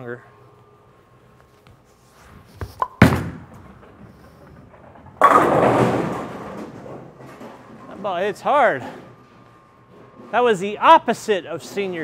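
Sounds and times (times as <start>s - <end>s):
bowling ball rolling: 2.4s - 10.3s
bowling ball thudding on lane: 2.6s - 7.6s
bowling pins crashing: 2.8s - 8.0s.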